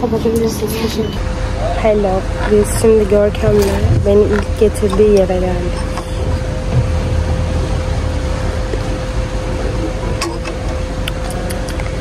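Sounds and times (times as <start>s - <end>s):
low rumble with hum: 0.0s - 12.0s.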